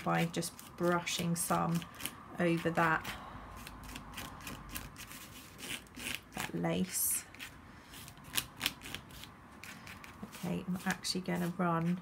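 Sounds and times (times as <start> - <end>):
paintbrush scratching on paper: 7.3 - 12.0.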